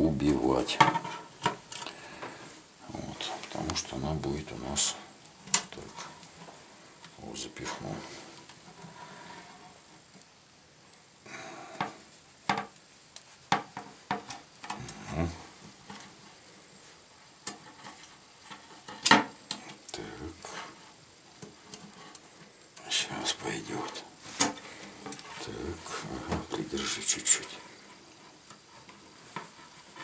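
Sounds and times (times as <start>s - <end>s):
handling noise of copper tubing: 0.5s - 10.4s, 11.7s - 22.5s, 23.8s - 30.0s.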